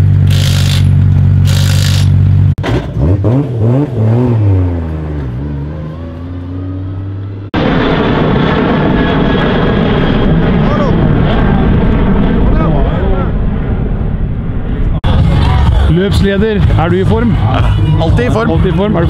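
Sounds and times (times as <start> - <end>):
jet airliner engines roaring: 5.8 - 19.0.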